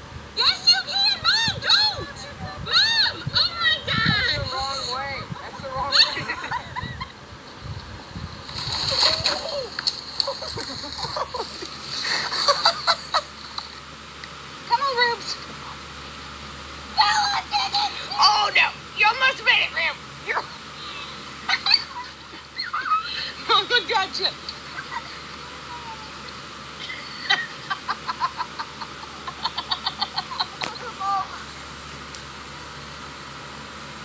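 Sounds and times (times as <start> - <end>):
voices calling out: 0.2 - 34.0
crashing through branches: 8.3 - 12.3.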